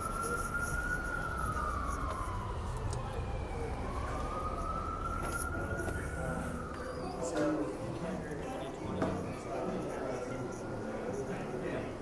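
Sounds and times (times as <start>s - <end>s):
emergency siren wailing: 0.0s - 12.0s
low traffic rumble: 0.0s - 12.0s.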